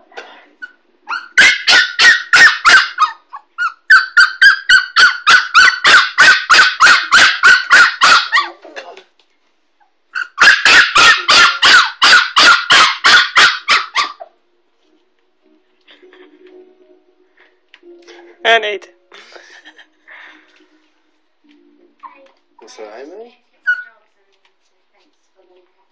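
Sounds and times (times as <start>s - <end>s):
puppy yapping: 0.6s - 8.6s, 10.1s - 14.3s.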